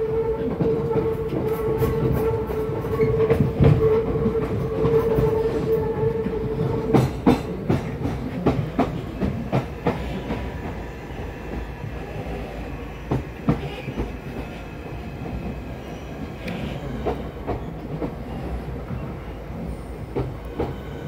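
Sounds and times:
train whine and rumble: 0:00.0 - 0:21.0.

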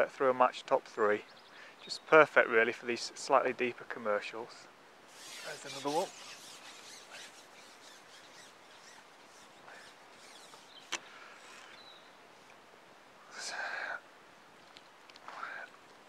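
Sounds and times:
faint outdoor background: 0:00.0 - 0:16.0.

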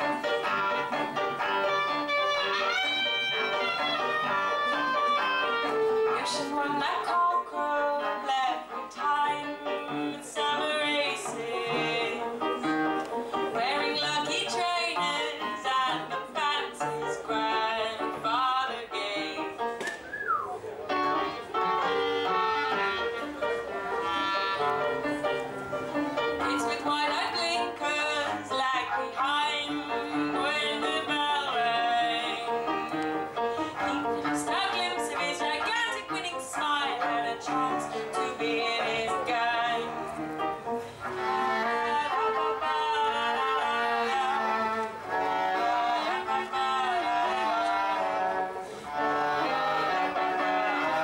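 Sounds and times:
cello: 0:00.0 - 0:19.7, 0:20.9 - 0:51.0
clarinet melody with sliding notes: 0:00.0 - 0:51.0.

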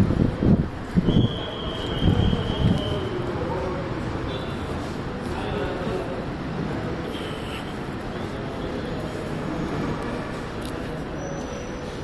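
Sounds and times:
crowd din: 0:00.0 - 0:12.0
distant indistinct voices: 0:00.7 - 0:12.0.

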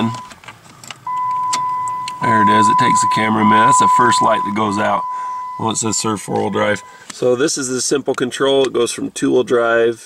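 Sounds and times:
sharp ignition clicks: 0:00.0 - 0:02.9
high-pitched electronic warning tone: 0:01.1 - 0:07.0.

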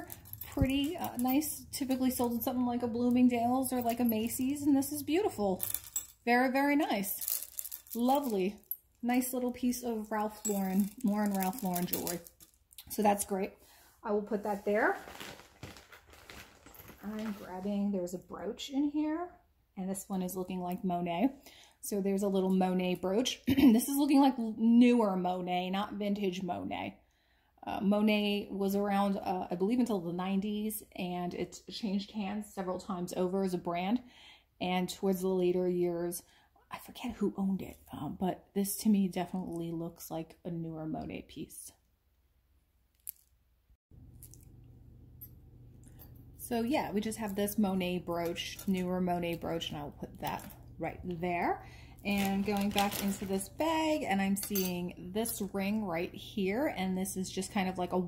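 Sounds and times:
low steady hum: 0:00.0 - 0:24.8, 0:44.0 - 0:58.0.

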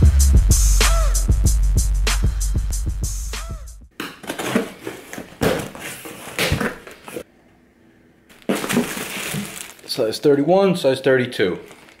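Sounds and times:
tape tearing: 0:04.2 - 0:07.2, 0:08.3 - 0:09.9
plastic bags rustling: 0:08.3 - 0:10.2, 0:11.6 - 0:12.0.

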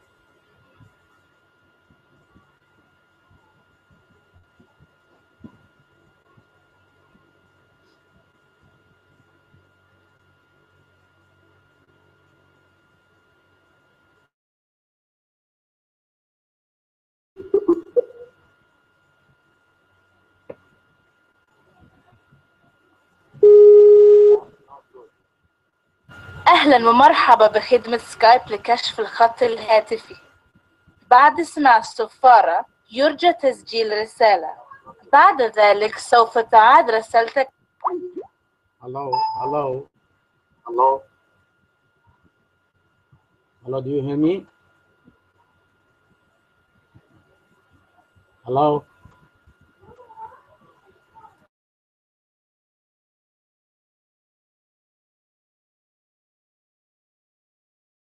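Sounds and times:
electronic call tone: 0:23.4 - 0:24.5, 0:39.1 - 0:39.8
faint high-pitched vocal sounds: 0:49.8 - 0:51.5.

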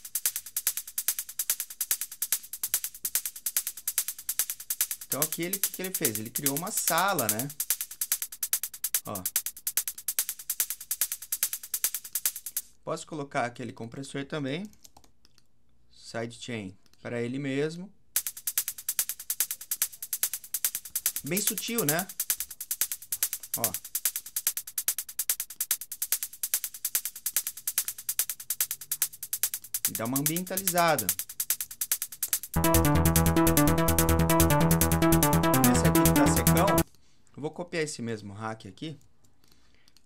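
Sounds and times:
electronic drum loop: 0:00.0 - 0:12.5, 0:18.2 - 0:36.8
man's voice: 0:35.6 - 0:36.8.

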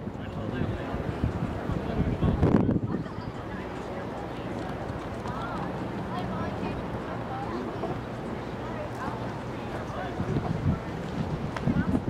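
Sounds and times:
faint distant voices: 0:00.0 - 0:12.0
steady low rumble: 0:00.0 - 0:12.0.

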